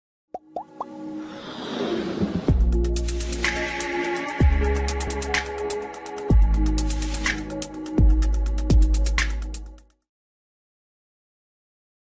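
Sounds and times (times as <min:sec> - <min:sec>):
whoosh: 0:01.2 - 0:02.9.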